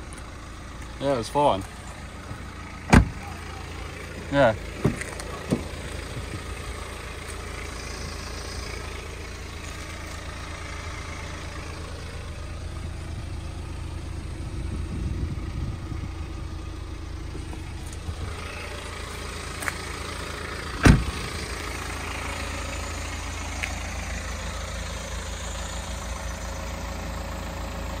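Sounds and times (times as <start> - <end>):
diesel engine idling: 0.0 - 28.0
loud thump: 2.9 - 3.2, 20.8 - 21.2.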